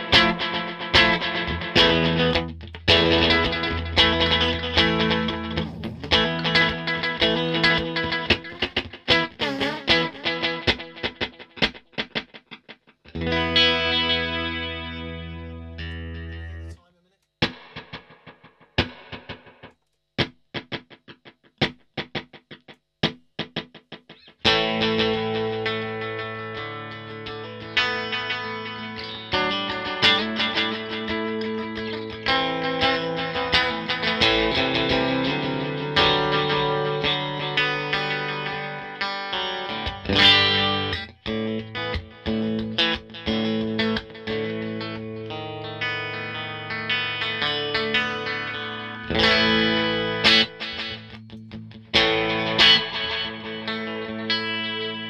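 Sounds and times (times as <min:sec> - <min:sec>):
electric guitar with delay: 0:00.0 - 0:16.8, 0:23.5 - 0:55.0.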